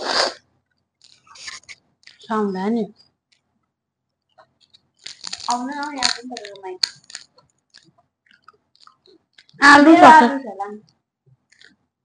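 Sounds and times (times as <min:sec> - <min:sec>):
chewing with soft crunches: 0:00.6 - 0:02.3, 0:04.2 - 0:09.6, 0:10.8 - 0:11.9.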